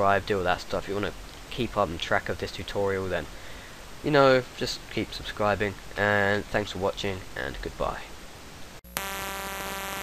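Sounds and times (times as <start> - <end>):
faint hiss: 0.0 - 8.8
buzzing electrical hum: 8.2 - 10.0.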